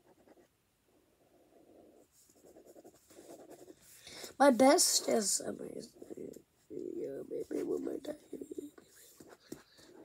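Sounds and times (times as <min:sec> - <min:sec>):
pen scratching on paper: 0:00.0 - 0:00.6, 0:01.3 - 0:04.0, 0:07.4 - 0:10.0.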